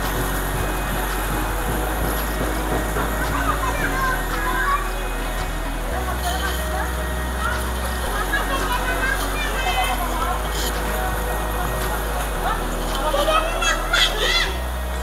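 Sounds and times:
chatter of people and children: 0:00.0 - 0:15.0.

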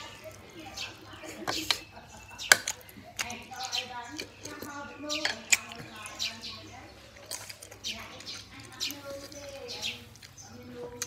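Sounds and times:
voiced murmur: 0:00.0 - 0:11.0
wet chewing and lip-smacking: 0:00.0 - 0:11.0.

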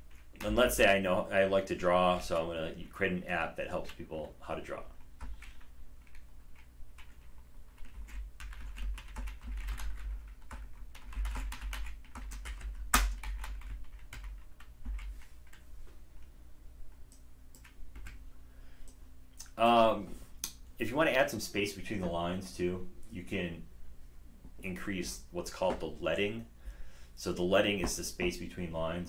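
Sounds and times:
typing on computer keyboard: 0:05.2 - 0:15.6.

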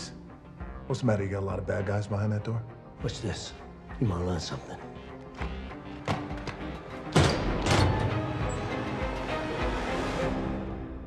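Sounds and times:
tense film score music: 0:00.0 - 0:11.0
heavy metal door opening: 0:06.0 - 0:09.2.

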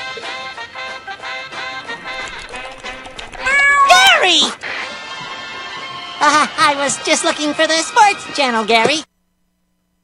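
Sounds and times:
cartoon cat-like meow: 0:03.3 - 0:04.5.

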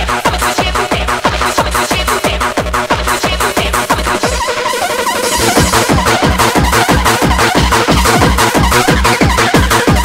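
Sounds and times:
fast hard-dance electronic music: 0:00.0 - 0:10.0
pounding kick drum: 0:05.3 - 0:10.0.

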